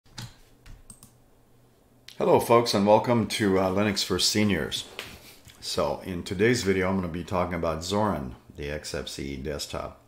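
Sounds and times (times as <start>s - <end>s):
computer mouse clicks: 0.2s - 1.2s.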